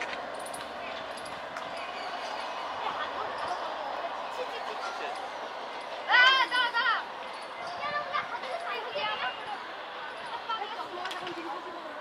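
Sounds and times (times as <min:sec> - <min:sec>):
train wheels rolling on rails: 0:00.0 - 0:12.0.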